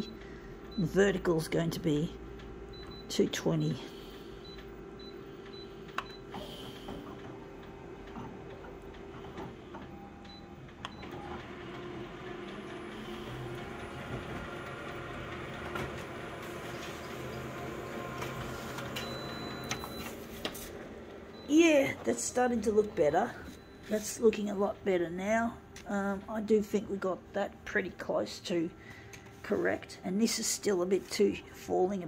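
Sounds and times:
photocopier running: 0.0s - 32.0s.

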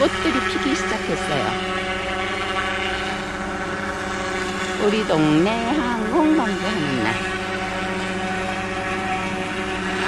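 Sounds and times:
helicopter flying overhead: 0.0s - 10.0s.

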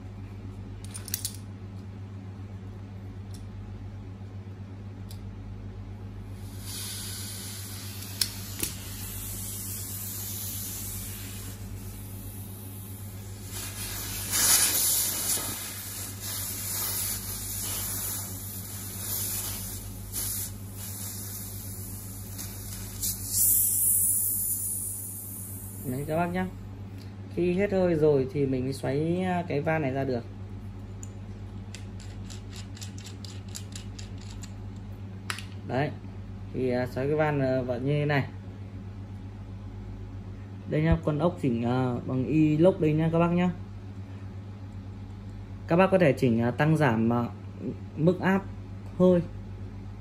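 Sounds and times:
steady low hum: 0.0s - 50.0s
compressed air hissing: 6.3s - 26.4s.

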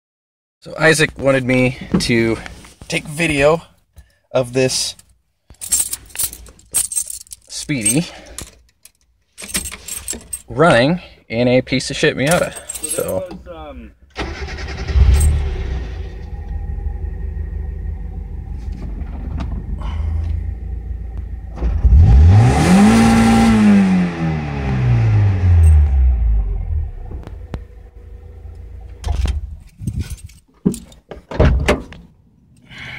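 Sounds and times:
keys jangling: 5.0s - 10.5s, 12.3s - 13.3s, 15.1s - 15.4s, 25.6s - 25.8s, 29.6s - 31.1s
car engine idling and revving: 14.2s - 30.1s.

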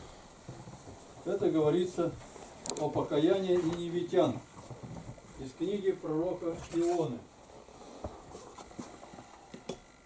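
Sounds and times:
faint rustling: 0.0s - 9.5s
man speaking: 1.2s - 2.2s, 2.8s - 4.5s, 5.4s - 7.3s.

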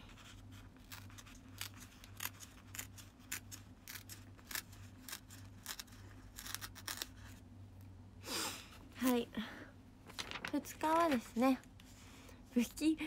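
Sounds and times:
paper rustling: 10.0s - 11.6s
paper pages ripping: 10.1s - 11.4s.

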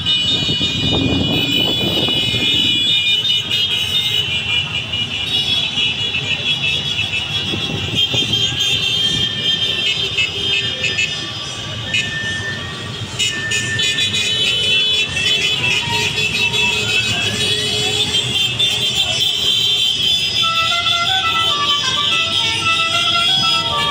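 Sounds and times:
rumble of traffic: 0.0s - 23.9s
vehicle horns: 0.0s - 23.9s.

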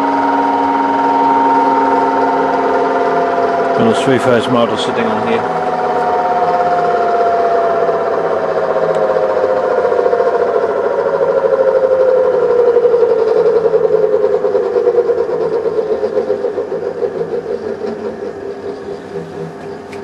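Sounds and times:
pulsing mechanical hum: 0.0s - 20.0s.

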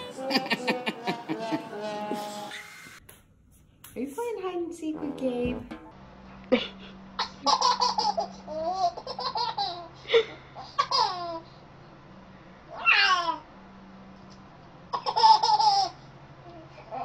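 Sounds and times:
baby laughing and squealing: 10.6s - 11.4s, 12.7s - 13.4s.

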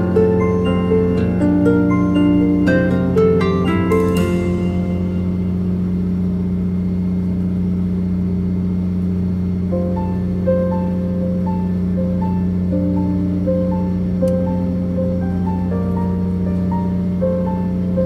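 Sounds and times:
melodic background music: 0.0s - 6.0s, 9.7s - 18.0s
boat engine drone: 0.0s - 18.0s.

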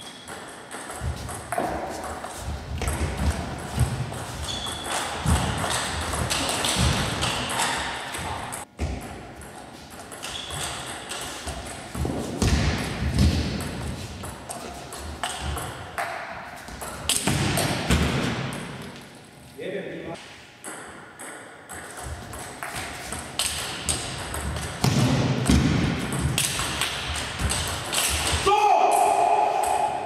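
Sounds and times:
footwork thumps: 1.0s - 7.5s, 11.4s - 18.6s.

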